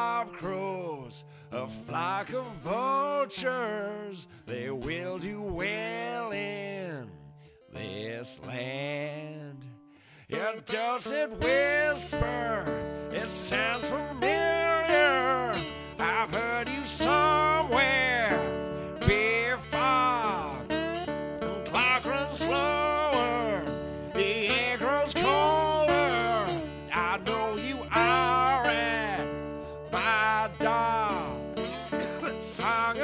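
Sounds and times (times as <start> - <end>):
acoustic guitar: 0.0 - 33.0
man singing folk blues: 0.0 - 33.0.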